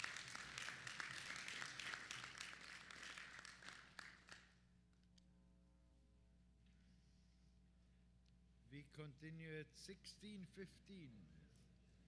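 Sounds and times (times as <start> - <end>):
audience applause: 0.0 - 4.4
low steady hum: 4.6 - 12.0.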